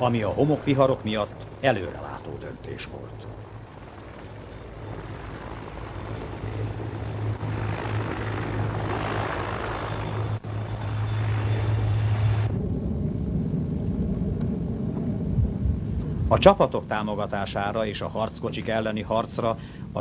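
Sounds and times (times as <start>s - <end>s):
helicopter rotor drone: 0.0s - 20.0s.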